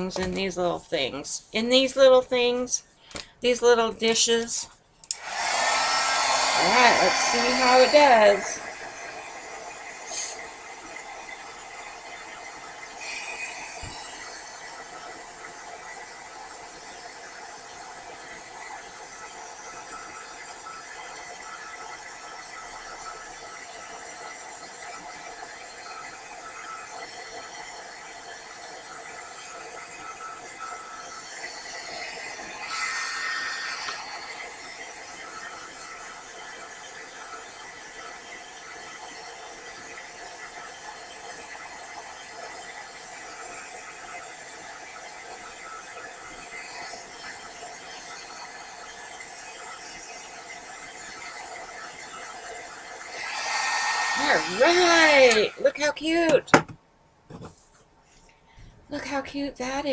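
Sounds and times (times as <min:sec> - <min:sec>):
heat gun fan blowing: 0:03.1 - 0:56.6.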